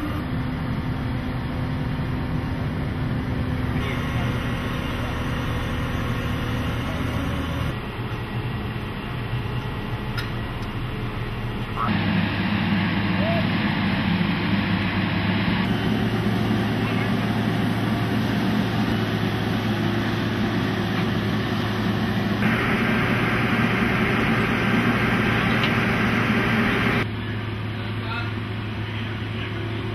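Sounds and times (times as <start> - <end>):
low machinery hum: 0.0 - 29.9.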